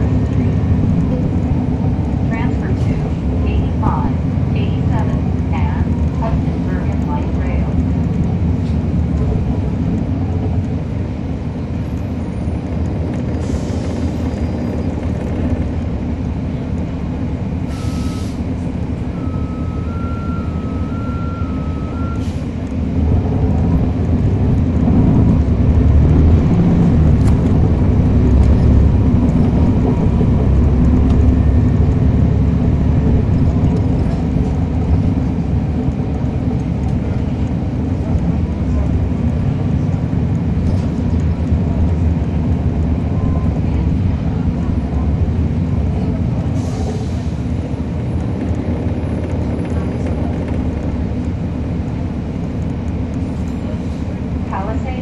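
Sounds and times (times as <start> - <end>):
bus diesel engine: 0.0 - 55.0.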